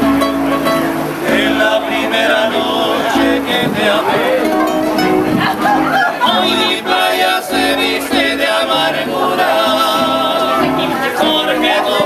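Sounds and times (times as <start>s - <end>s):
acoustic guitars: 0.0s - 12.0s
men singing in harmony: 0.9s - 12.0s.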